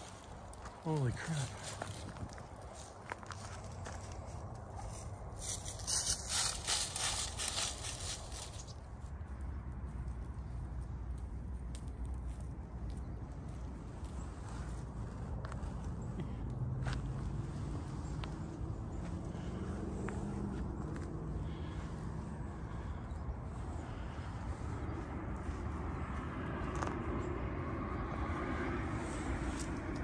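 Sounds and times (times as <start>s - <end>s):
footsteps crunching dry leaves: 0.0s - 8.8s
footsteps on gravel path: 0.0s - 8.8s, 12.2s - 22.0s.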